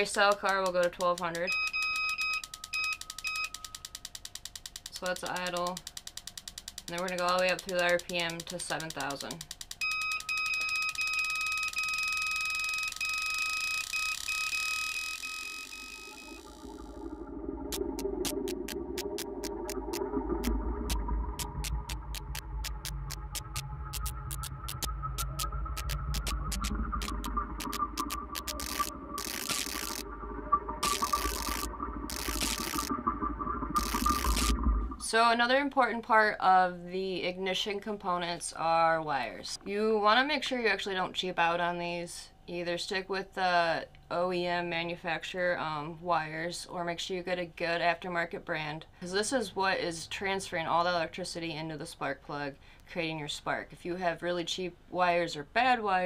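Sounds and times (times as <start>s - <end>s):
spark plug tester snapping ticks: 2.0s - 10.8s
spark plugs ticking: 2.5s - 9.8s, 17.8s - 30.0s
high whine: 15.6s - 35.0s
steady hum: 15.7s - 35.3s.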